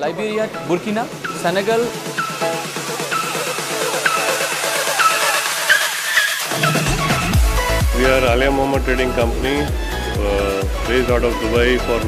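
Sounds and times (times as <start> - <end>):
high synth figure: 1.0 - 8.4
heavy bass: 6.5 - 12.0.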